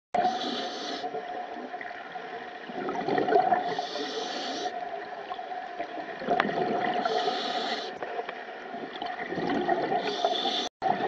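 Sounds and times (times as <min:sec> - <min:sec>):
scuba regulator hissing inhalation: 0:00.2 - 0:01.2, 0:03.6 - 0:04.8, 0:07.0 - 0:08.0, 0:09.9 - 0:10.7
exhaust bubbles bubbling: 0:02.6 - 0:03.6, 0:06.1 - 0:07.1, 0:08.8 - 0:10.0.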